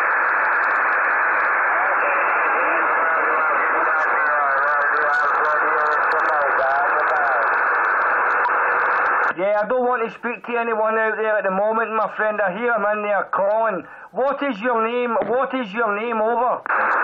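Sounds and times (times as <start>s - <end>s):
radio static: 0.0s - 17.0s
faint radio voice: 1.5s - 7.7s.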